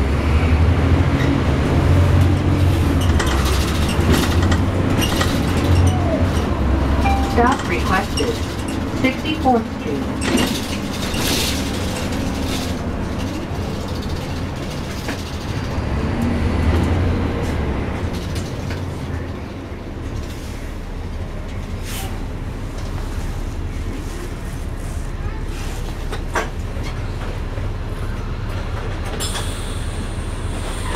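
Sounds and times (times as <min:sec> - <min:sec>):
bus engine and road rumble: 0:00.0 - 0:30.9
voices: 0:05.7 - 0:10.7.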